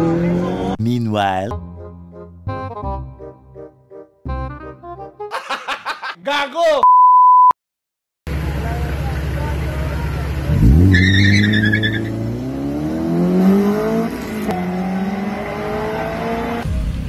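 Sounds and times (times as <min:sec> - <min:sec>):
race car engine revving: 0:00.0 - 0:00.8, 0:08.3 - 0:16.8
tyre squeal: 0:10.9 - 0:12.1.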